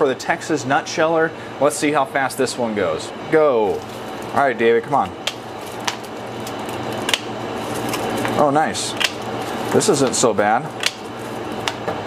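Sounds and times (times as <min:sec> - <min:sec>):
steady low hum: 0:00.0 - 0:12.0
hard candy cracking: 0:03.7 - 0:11.9.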